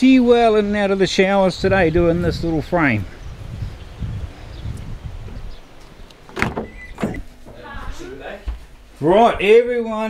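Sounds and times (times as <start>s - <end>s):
low rumbling: 0.2s - 9.6s
van door opening click: 6.1s - 7.6s.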